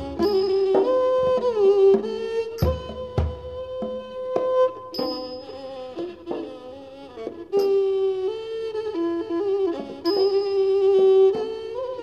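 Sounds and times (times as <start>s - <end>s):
two-string fiddle melody: 0.0s - 12.0s
short high-ringing strike: 4.9s - 5.9s.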